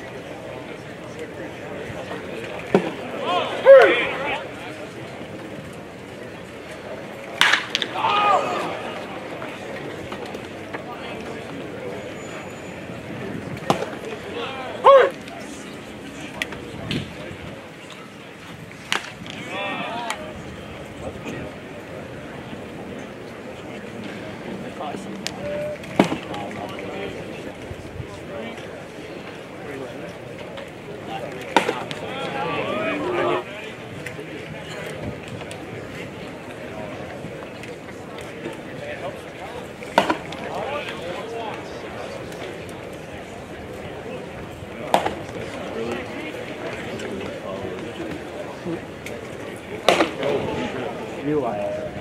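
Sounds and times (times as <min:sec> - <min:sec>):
murmur of voices: 0:00.0 - 0:52.0
outdoor ballfield ambience: 0:00.0 - 0:52.0.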